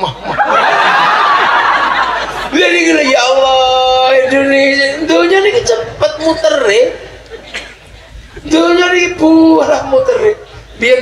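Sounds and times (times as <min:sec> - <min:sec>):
large audience laughing: 0:00.0 - 0:03.4.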